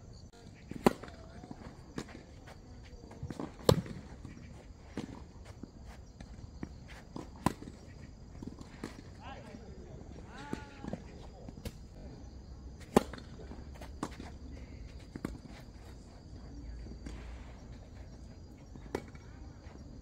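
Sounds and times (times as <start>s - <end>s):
tennis ball struck by rackets: 0.7s - 1.3s, 12.8s - 13.3s.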